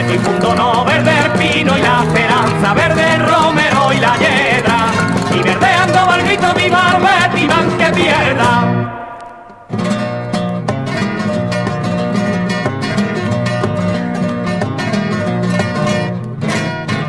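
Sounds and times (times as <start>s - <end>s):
guitars plucked and strummed: 0.0s - 17.0s.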